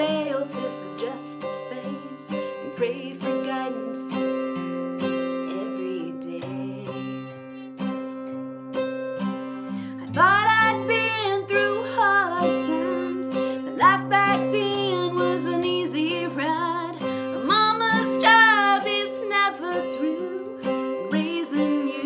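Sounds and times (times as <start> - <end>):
woman singing: 0.0 - 7.5, 9.9 - 22.0
acoustic guitar country accompaniment: 0.0 - 22.0.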